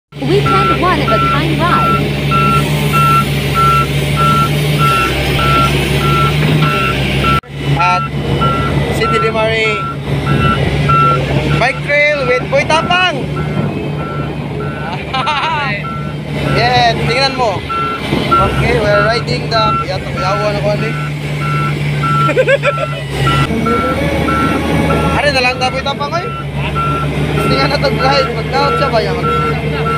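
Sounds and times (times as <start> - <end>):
excavator diesel engine running: 0.1 - 29.9
warning alarm beeping: 0.2 - 29.9
person laughing: 14.8 - 15.8, 22.2 - 23.2.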